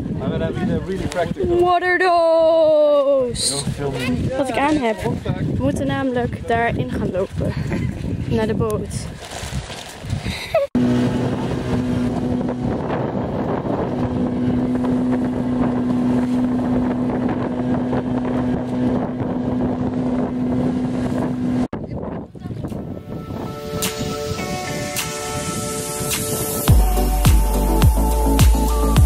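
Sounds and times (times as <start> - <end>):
water rushing past hull: 0.0 - 21.7
boat motor running: 10.8 - 23.6.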